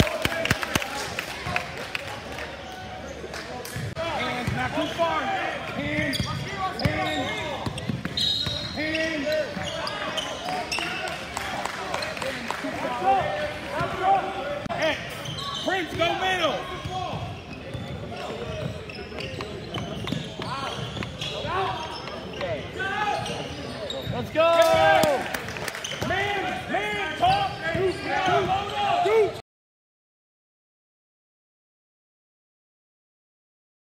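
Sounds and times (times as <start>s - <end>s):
sneakers squeaking on hardwood floor: 3.8s - 11.1s, 15.0s - 25.0s, 26.9s - 29.3s.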